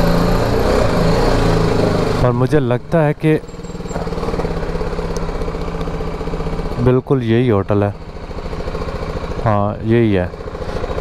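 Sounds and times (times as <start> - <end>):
motorcycle engine running at low revs: 0.0 - 11.0.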